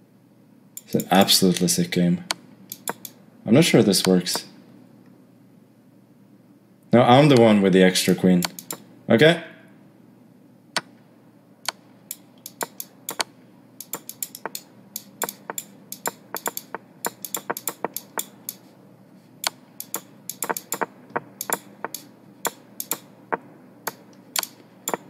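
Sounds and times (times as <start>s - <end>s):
computer mouse clicks: 2.7s - 3.2s, 8.4s - 8.8s, 11.6s - 18.6s, 19.4s - 23.1s, 23.9s - 25.0s
chess game move sounds: 15.2s - 18.3s, 20.3s - 22.6s.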